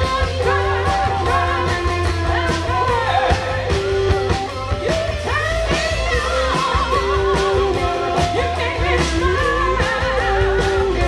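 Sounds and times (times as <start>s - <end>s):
person singing: 0.0s - 11.0s
rock band playing: 0.0s - 11.0s.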